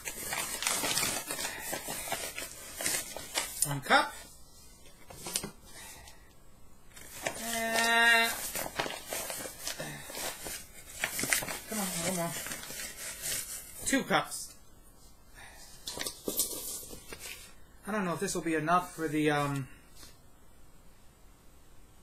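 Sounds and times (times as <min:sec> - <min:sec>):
paper bag rustling: 0:00.0 - 0:05.9, 0:06.9 - 0:14.2.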